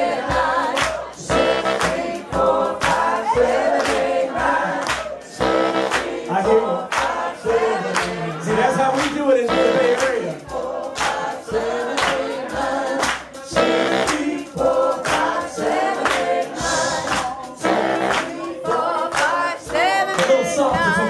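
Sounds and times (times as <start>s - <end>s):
voices singing together: 0.0s - 21.0s.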